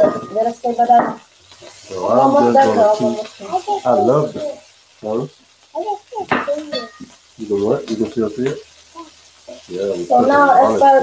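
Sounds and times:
vegetables sizzling in a skillet: 0:00.0 - 0:11.0.

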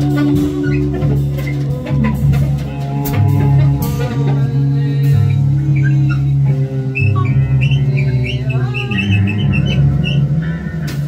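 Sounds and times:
improvised ensemble music: 0:00.0 - 0:11.0
high chirping sounds: 0:07.0 - 0:10.3.

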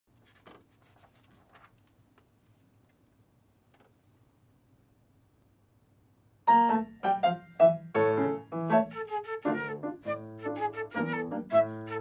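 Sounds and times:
sheet music rustling: 0:00.1 - 0:02.6, 0:06.5 - 0:12.0
low steady room hum: 0:00.1 - 0:08.6.

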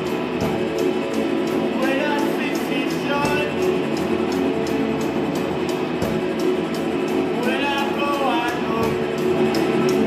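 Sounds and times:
cymbal strikes: 0:00.0 - 0:10.0
drum kit: 0:00.0 - 0:10.0.

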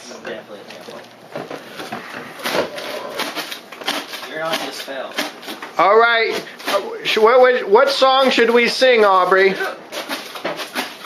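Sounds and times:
people talking indistinctly: 0:04.2 - 0:09.8.

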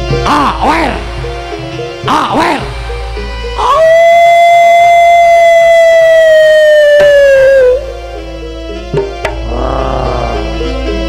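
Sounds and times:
loud long held note: 0:03.5 - 0:11.0.

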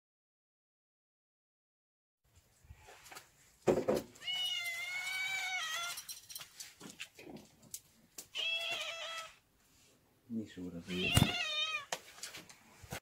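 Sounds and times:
cat meowing: 0:04.2 - 0:06.1, 0:08.2 - 0:09.4, 0:10.9 - 0:11.9.

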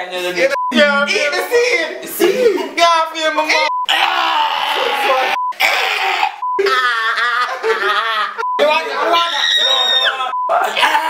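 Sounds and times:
censor bleeps: 0:00.5 - 0:01.4
men yelling and groaning: 0:03.9 - 0:11.0.

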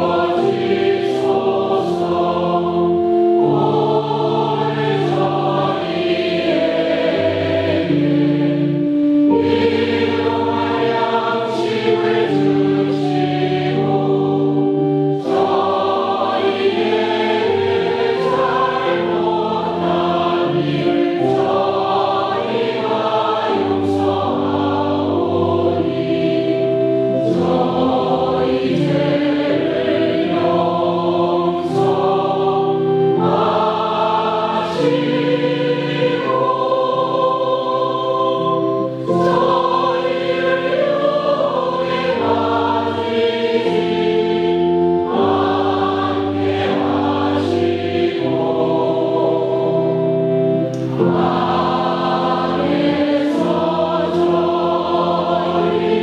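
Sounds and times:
choir singing a chant: 0:00.0 - 0:56.0.

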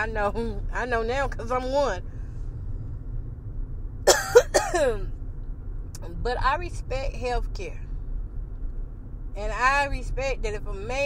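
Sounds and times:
car road noise rumble: 0:00.0 - 0:11.0
person coughing: 0:04.1 - 0:05.0.

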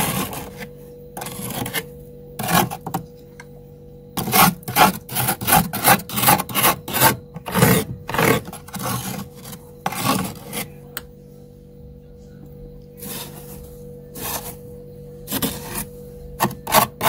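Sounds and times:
metal utensil scraping frost: 0:00.0 - 0:03.0, 0:04.2 - 0:10.8, 0:13.0 - 0:14.6, 0:15.3 - 0:17.0.

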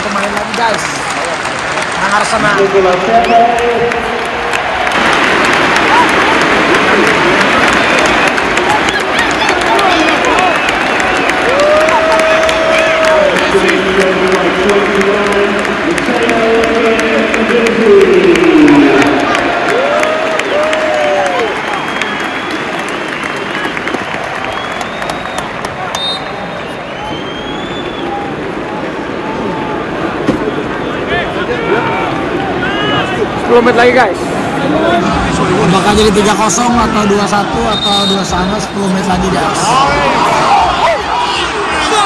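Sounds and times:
crowd applauding: 0:00.0 - 0:42.0.

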